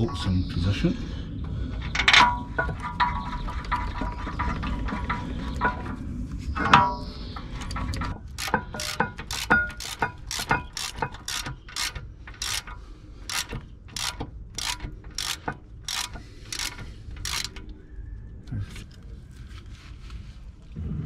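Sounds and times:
ratchet wrench pawl clicking: 8.2 - 17.7.

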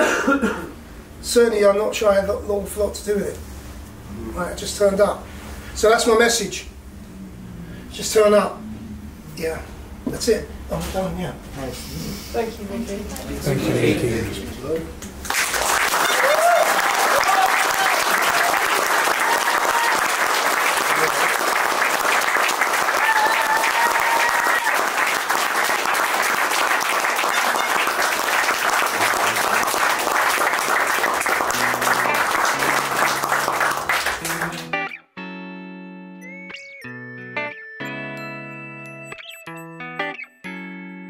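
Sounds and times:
audience applauding: 15.2 - 35.0
people cheering: 15.3 - 34.9
guitar music: 31.1 - 41.0.

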